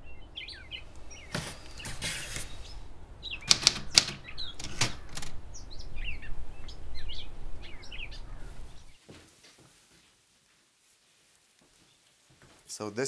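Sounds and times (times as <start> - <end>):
small birds chirping: 0.0 - 9.0, 11.6 - 12.9
low steady rumble: 2.6 - 3.4, 5.3 - 9.0.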